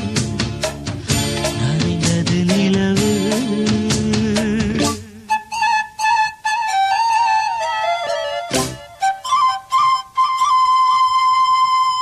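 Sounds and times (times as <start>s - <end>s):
solo flute melody: 4.8s - 12.0s.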